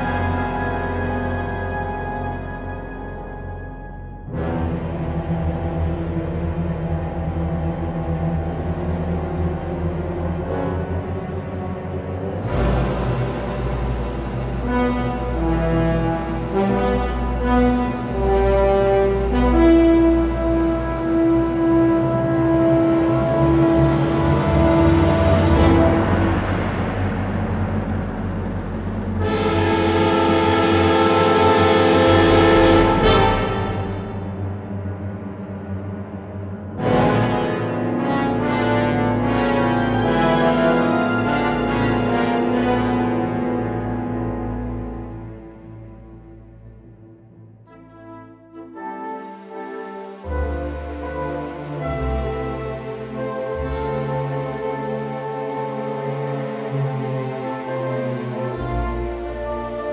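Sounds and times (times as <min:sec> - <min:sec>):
dark orchestral string music: 0:00.0 - 0:59.9
low rumble: 0:22.2 - 0:37.2.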